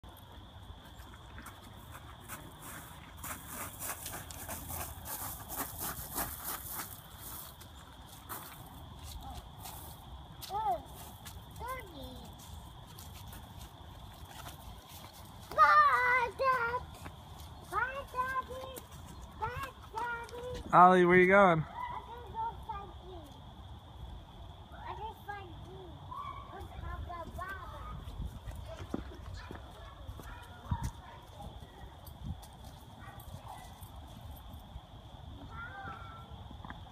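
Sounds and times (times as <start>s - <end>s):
child's wordless calls: 15.5s - 16.9s, 35.5s - 36.4s
wind rumbling on microphone: 26.7s - 36.9s.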